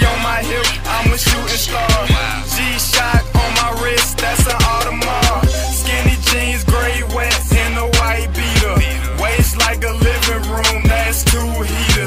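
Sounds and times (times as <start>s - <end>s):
crisp hi-hats: 0.0s - 12.0s
hip-hop beat: 0.0s - 12.0s
deep kick drums: 1.1s - 2.4s, 3.1s - 3.8s, 4.4s - 12.0s.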